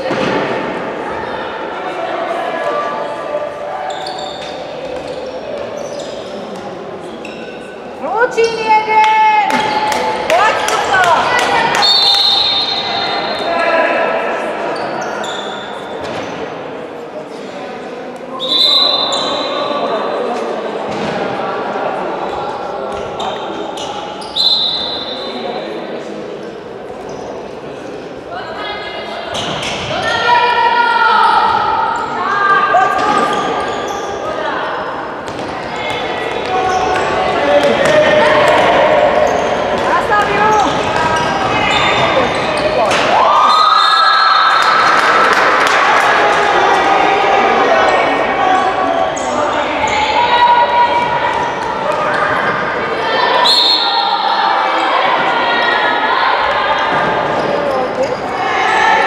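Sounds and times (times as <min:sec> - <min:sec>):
referee's whistle blasts: 0:11.8 - 0:13.5, 0:18.4 - 0:19.5, 0:24.2 - 0:25.4, 0:53.3 - 0:54.3
players and spectators shouting: 0:29.9 - 0:59.0.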